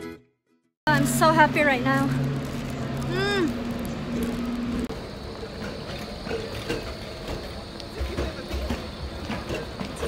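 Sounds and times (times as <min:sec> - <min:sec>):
city street noise: 0:00.9 - 0:10.0
tram rumbling on rails: 0:00.9 - 0:10.0.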